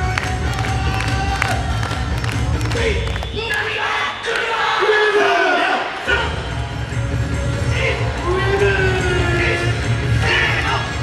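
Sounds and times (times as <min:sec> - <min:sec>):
voices shouting a drawn-out call: 0:02.8 - 0:06.4.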